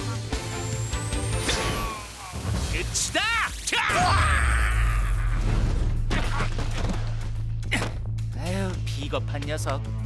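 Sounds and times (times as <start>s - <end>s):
crackling electric burst: 0.4s - 3.8s
background music with low bass: 5.9s - 10.0s.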